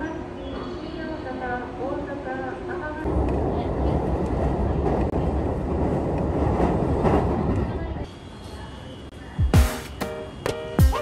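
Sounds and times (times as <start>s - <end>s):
train running on rails: 0.0s - 11.0s.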